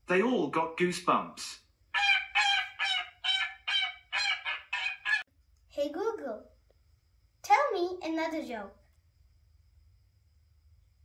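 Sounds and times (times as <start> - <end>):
geese honking through small speaker: 1.9 - 5.3.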